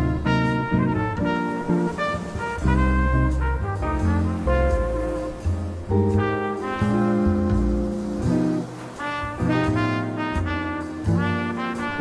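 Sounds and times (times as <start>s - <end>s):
bass line: 0.0s - 12.0s
brass section punchy chords: 0.0s - 12.0s.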